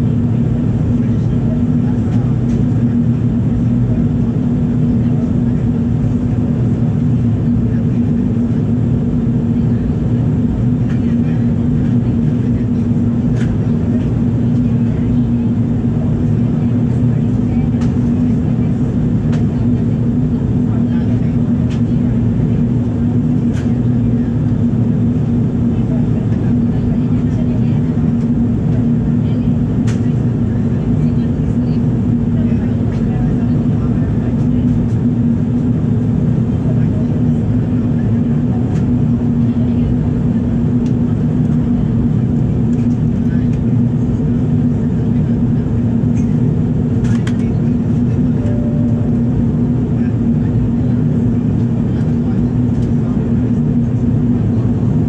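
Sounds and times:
airflow over fuselage: 0.0 - 55.0
constant low hum: 0.0 - 55.0
jet engine rumble: 0.0 - 55.0.

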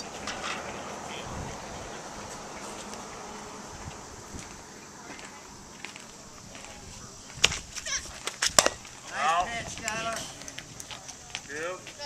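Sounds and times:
bat cracking a ball: 8.2 - 10.4.

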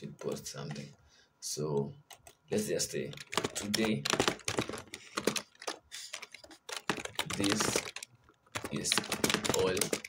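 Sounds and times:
keyboard keys clicking: 2.1 - 2.4, 3.0 - 10.0.

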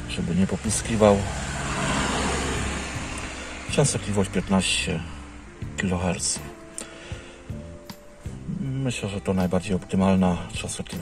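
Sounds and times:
road vehicle passing: 0.0 - 5.8.

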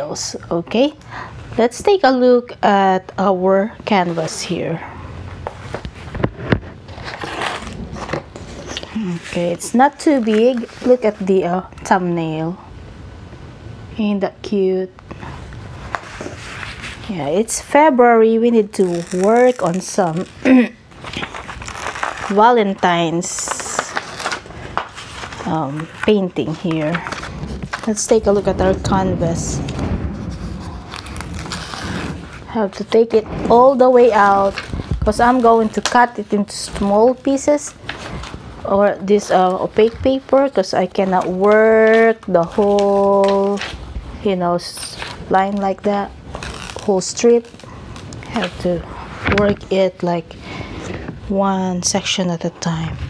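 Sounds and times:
canvas sheet rustling: 3.8 - 11.6, 15.2 - 18.0, 18.6 - 51.4.

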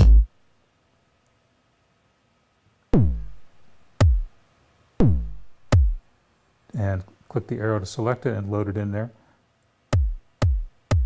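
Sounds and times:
electronic kick drum: 0.0 - 0.3, 3.0 - 4.3, 5.0 - 6.0, 9.9 - 11.0.

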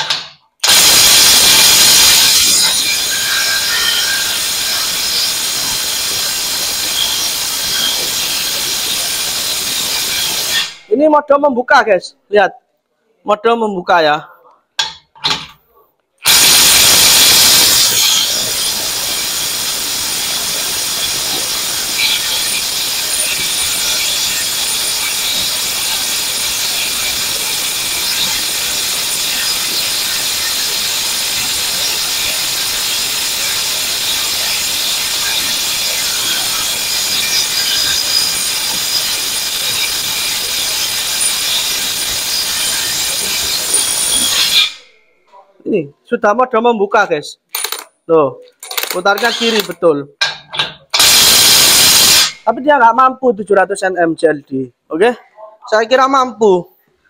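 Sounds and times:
impact wrench hammering: 0.0 - 10.8, 14.8 - 15.5, 16.2 - 44.8, 47.6 - 47.9, 48.6 - 52.4.

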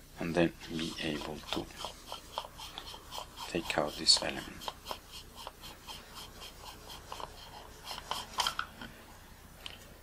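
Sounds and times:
hands scraping lens barrel: 0.7 - 8.6.

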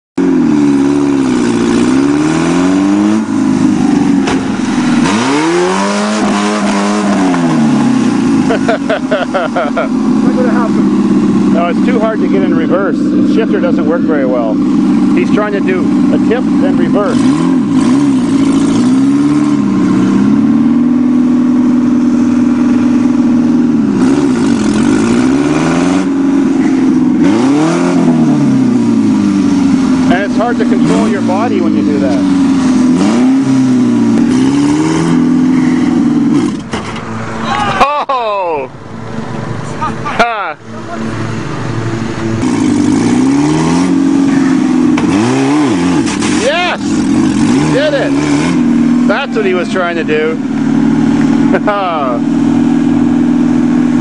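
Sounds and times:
car engine revving hard: 0.2 - 54.0.

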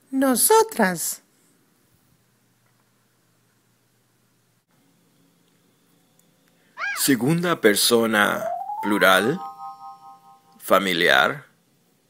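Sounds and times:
high-pitched rising and falling call: 8.2 - 10.6.

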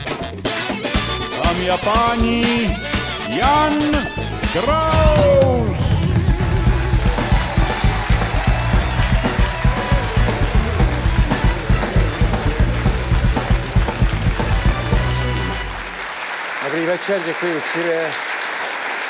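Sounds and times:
live band playing upbeat instrumental: 0.0 - 16.0.

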